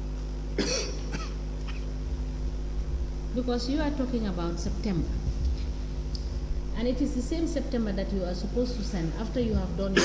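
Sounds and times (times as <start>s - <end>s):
steady electrical hum: 0.0s - 10.0s
person coughing: 0.6s - 1.9s.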